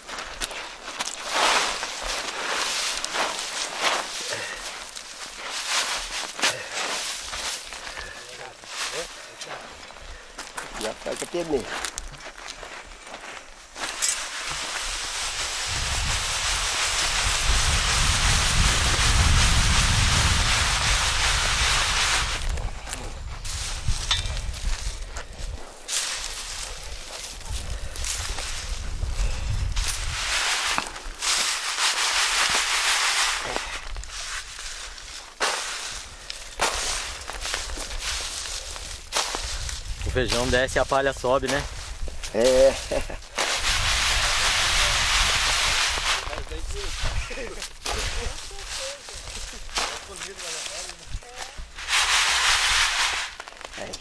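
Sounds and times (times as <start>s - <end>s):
bean pods rustling in winnowing sieve: 0.0s - 54.0s.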